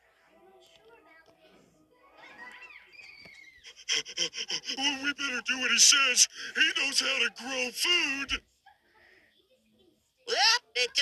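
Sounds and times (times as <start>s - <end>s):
high-pitched cartoon voice speaking: 3.9s - 8.4s, 10.3s - 11.0s.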